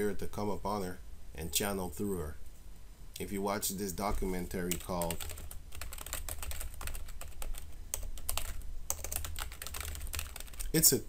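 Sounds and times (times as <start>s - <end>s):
steady low hum: 0.0s - 11.0s
keyboard typing: 4.1s - 10.8s.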